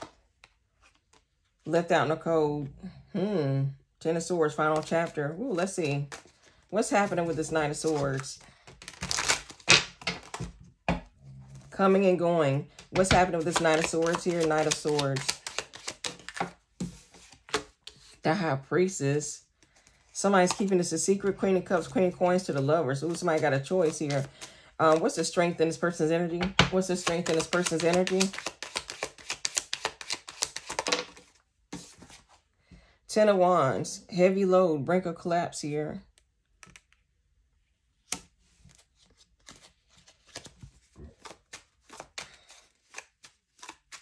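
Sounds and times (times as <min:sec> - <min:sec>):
cards clicking and sliding on wood: 0:12.8 - 0:18.0, 0:26.8 - 0:32.2.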